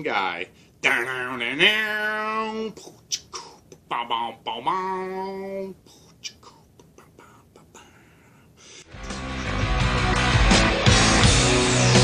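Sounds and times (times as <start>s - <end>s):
man whispering: 2.0s - 8.6s.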